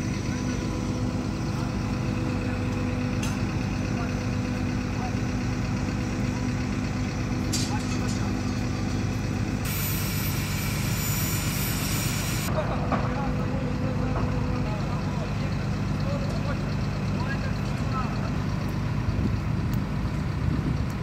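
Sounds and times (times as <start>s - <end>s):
crane diesel engine running: 0.0s - 21.0s.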